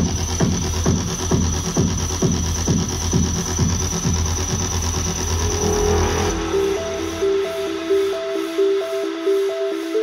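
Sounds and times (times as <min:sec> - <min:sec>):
deep bass: 0:00.0 - 0:08.9
synth melody: 0:02.6 - 0:10.0
falling-pitch sweeps: 0:04.2 - 0:09.3.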